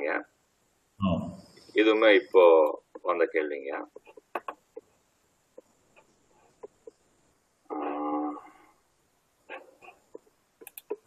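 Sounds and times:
animal call: 7.7 - 8.7
faint clicks: 10.1 - 11.0.

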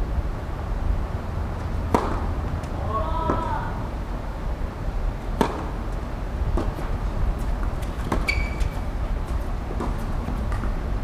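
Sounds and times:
racket striking tennis ball: 1.8 - 3.5, 5.4 - 5.8, 6.5 - 10.8.

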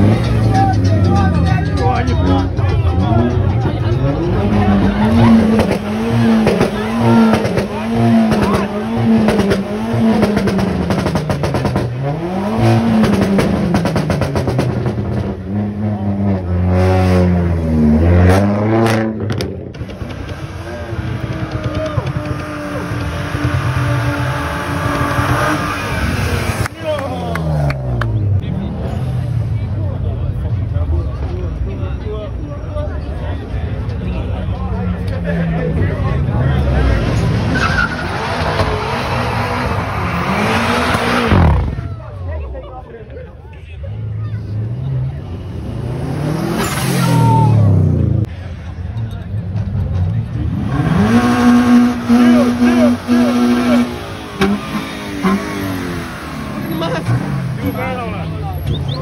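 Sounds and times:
car engine revving: 0.0 - 30.8, 34.8 - 42.0, 44.2 - 48.8, 49.6 - 59.0
crowd voices: 0.0 - 59.0.

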